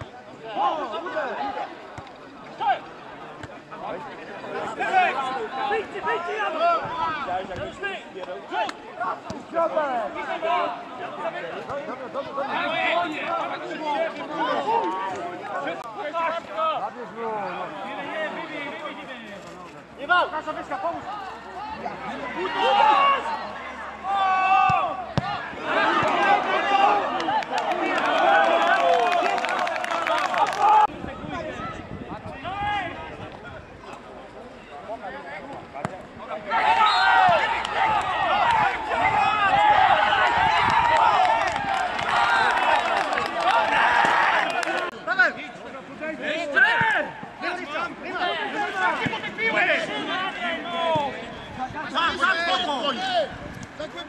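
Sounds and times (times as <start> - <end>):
men shouting over one another: 36.5 - 44.9.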